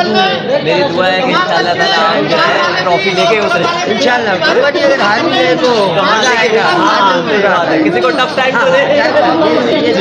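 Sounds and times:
man talking into microphone: 0:00.0 - 0:10.0
people chattering: 0:00.0 - 0:10.0.

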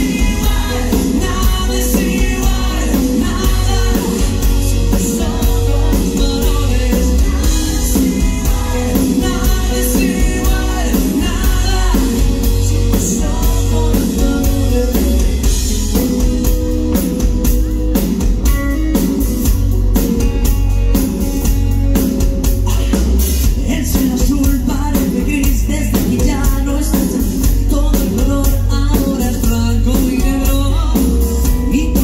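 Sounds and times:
man singing: 0:00.0 - 0:19.2, 0:22.6 - 0:32.0
drum beat: 0:00.0 - 0:31.8
electric guitar: 0:00.0 - 0:32.0.

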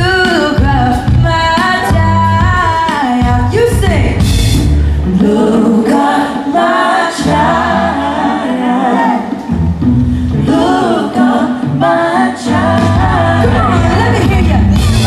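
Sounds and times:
woman singing: 0:00.0 - 0:04.3, 0:05.1 - 0:09.5, 0:10.3 - 0:15.0
band playing: 0:00.0 - 0:15.0
several voices singing together: 0:05.1 - 0:09.6, 0:10.3 - 0:15.0.

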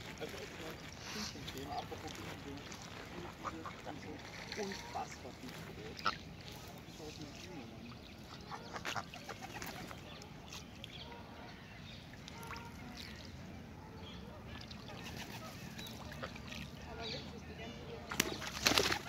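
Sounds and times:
faint bird calls: 0:07.8 - 0:17.4
pigeon wings flapping: 0:18.1 - 0:19.0.

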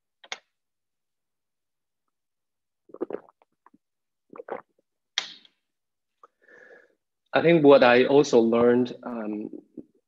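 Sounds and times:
person gulping: 0:02.8 - 0:05.0.

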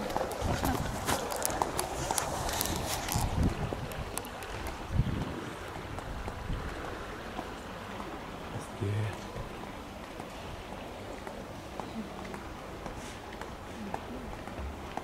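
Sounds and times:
footsteps on stone paving: 0:00.0 - 0:05.3, 0:10.0 - 0:15.0.

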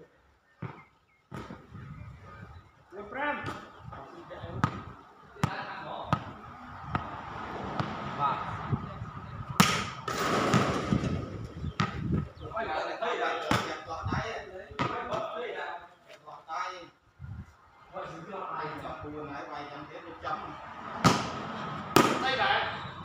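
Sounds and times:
ball being kicked: 0:09.6 - 0:12.2.

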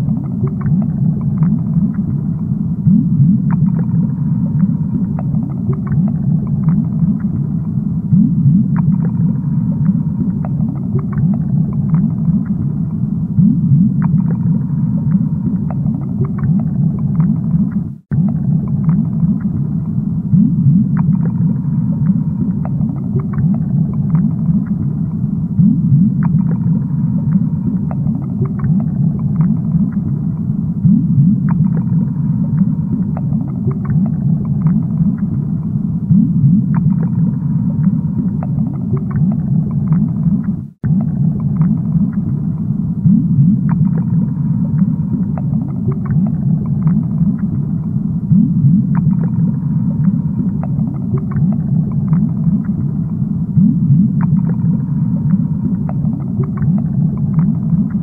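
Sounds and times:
underwater rumble of aquarium water: 0:00.0 - 0:58.0
small clicks and pops: 0:20.9 - 0:25.0, 0:27.3 - 0:30.5, 0:37.8 - 0:42.7, 0:44.8 - 0:47.9, 0:48.9 - 0:53.2, 0:54.2 - 0:58.0.

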